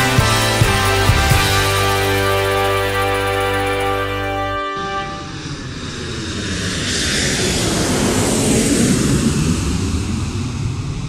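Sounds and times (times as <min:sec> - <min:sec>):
airliner cabin jet engine rumble: 0:04.9 - 0:11.0.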